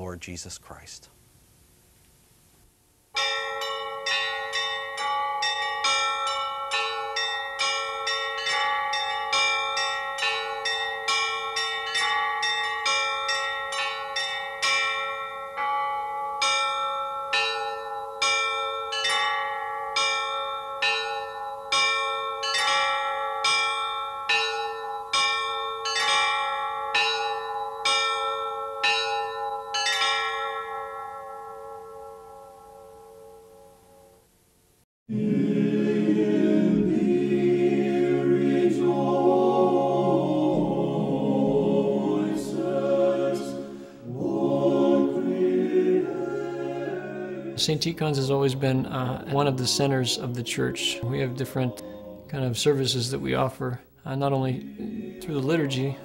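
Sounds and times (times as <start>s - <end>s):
church bells ringing: 3.2s - 34.2s, 46.0s - 53.7s, 54.3s - 56.0s.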